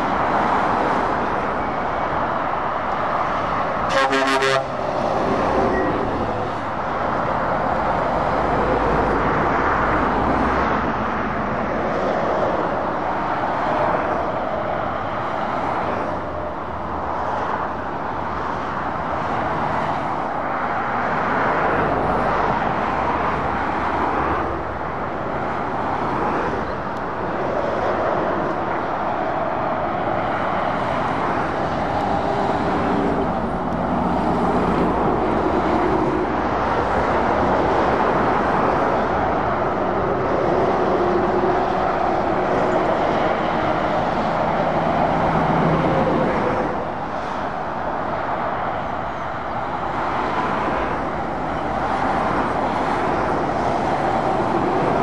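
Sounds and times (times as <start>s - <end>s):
lorries and cars passing: 0.0s - 55.0s.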